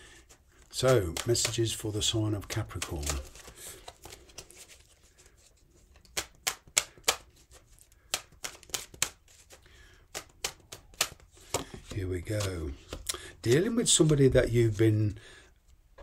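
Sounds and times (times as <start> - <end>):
cards being shuffled: 0.2 - 15.1.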